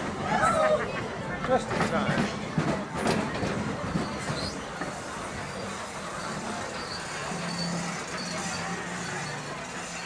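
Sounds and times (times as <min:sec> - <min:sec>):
roller coaster running on track: 0:00.0 - 0:10.0.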